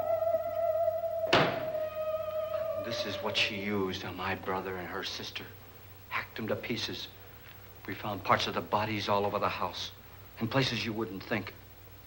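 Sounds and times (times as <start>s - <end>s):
theremin wavering note: 0.0s - 4.8s
sharp thunk: 1.3s - 1.7s.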